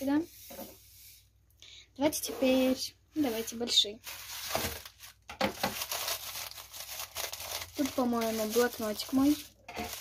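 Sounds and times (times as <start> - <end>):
plastic bag crinkling: 3.4 - 10.0.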